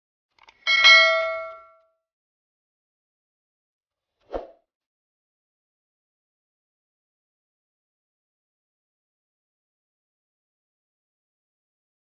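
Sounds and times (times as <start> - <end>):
metallic strike ringing: 0.7 - 1.8.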